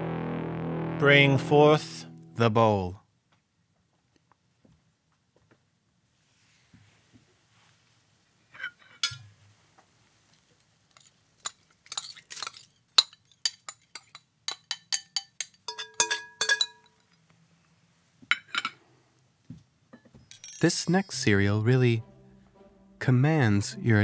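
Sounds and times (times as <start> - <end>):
glass and china clinking: 11.0 - 17.1, 20.2 - 21.2.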